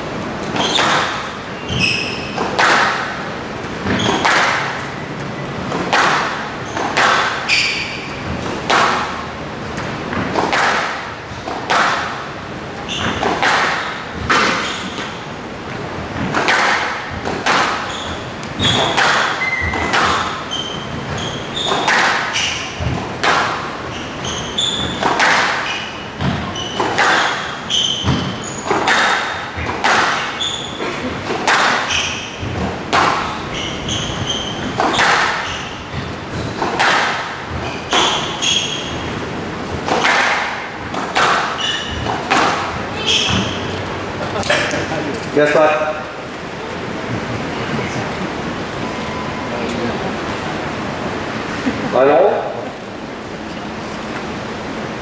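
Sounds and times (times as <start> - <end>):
shoe squeaks on court floor: 0.6 - 2.4, 3.8 - 4.4, 6.6 - 8.3, 12.8 - 15.2, 17.6 - 22.8, 23.8 - 28.9, 30.1 - 31.1, 31.8 - 32.4, 33.2 - 36.6, 37.6 - 39.2, 41.4 - 42.2, 43.0 - 43.9
squash ball cracking off racquet: 21.7 - 23.7, 36.6 - 38.3.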